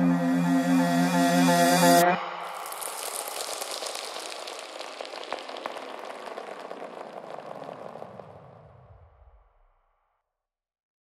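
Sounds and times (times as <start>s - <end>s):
crackling hissing electronic noise: 1.7s - 9.0s.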